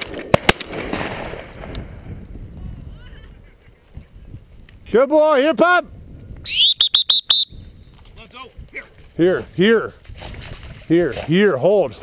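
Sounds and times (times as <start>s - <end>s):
dog training whistle: 6.5s - 7.6s.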